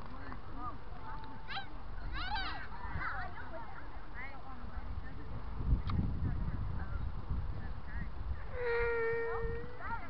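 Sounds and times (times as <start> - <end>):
child shouting: 1.5 - 3.1.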